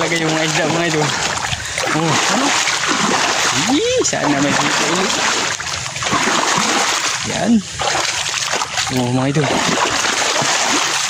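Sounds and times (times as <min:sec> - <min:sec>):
water splashing and sloshing: 0:00.0 - 0:11.0.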